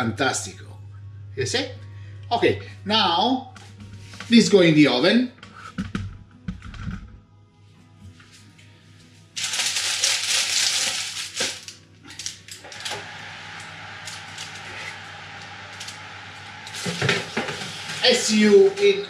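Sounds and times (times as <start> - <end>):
soft background music: 0.0 - 19.0
loud hiss: 12.7 - 18.9.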